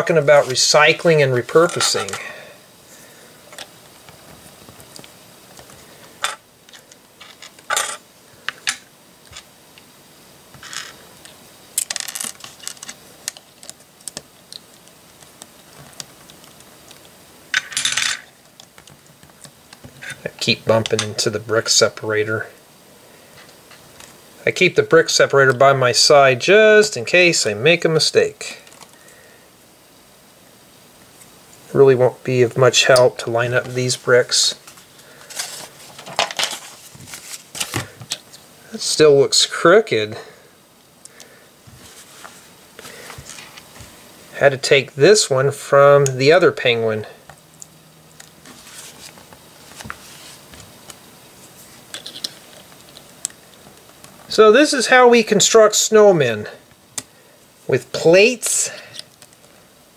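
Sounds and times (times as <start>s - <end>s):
paper rustling: 0.0s - 2.2s, 33.6s - 38.3s, 41.6s - 44.0s, 48.3s - 53.1s.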